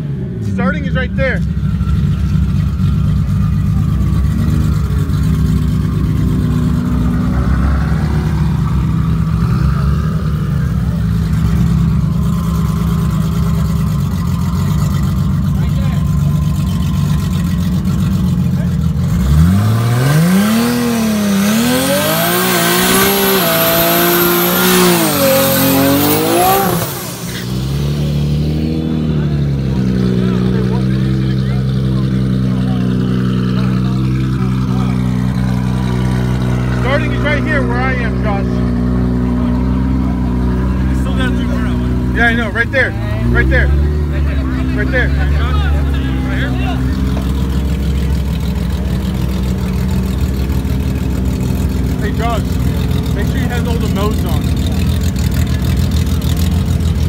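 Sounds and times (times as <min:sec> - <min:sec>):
engine revving with high whine: 0:00.0 - 0:57.0
race car engines idling: 0:00.0 - 0:57.0.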